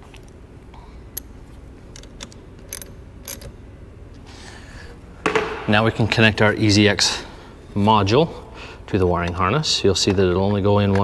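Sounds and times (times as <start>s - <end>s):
ratchet clicks: 1.9s - 3.5s.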